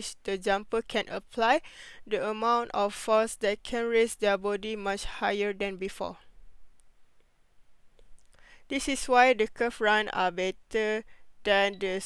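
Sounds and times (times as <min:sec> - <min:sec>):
person speaking: 0:00.0 - 0:06.3, 0:08.1 - 0:12.0.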